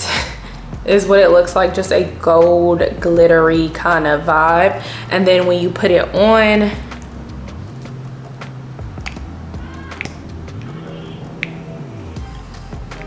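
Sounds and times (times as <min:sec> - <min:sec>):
soft music with low bass: 0:00.0 - 0:13.0.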